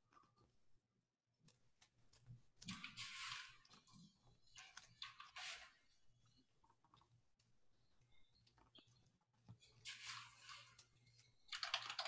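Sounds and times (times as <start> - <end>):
keyboard typing: 11.5 - 12.0.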